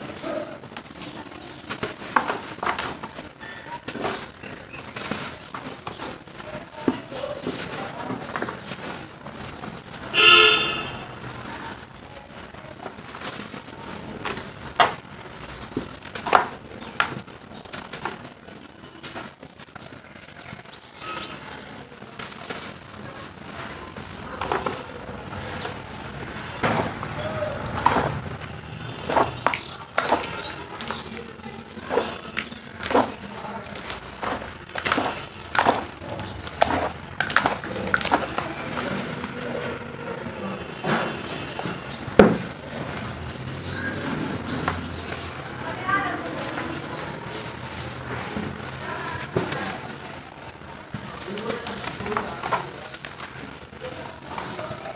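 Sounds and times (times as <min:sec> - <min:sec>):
dry mud crumbling crackles: 0:00.0 - 0:54.9
falling grains: 0:00.8 - 0:39.4.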